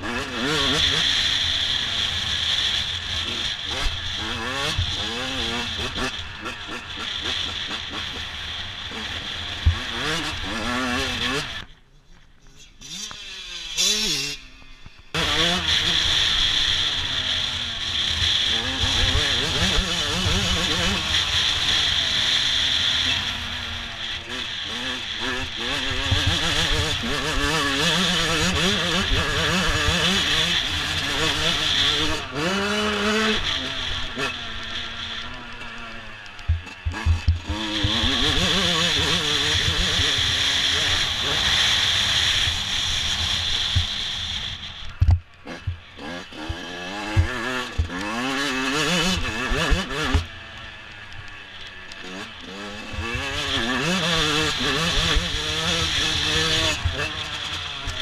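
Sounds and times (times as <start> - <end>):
motocross engine revving: 0.0 - 11.7, 12.6 - 58.0.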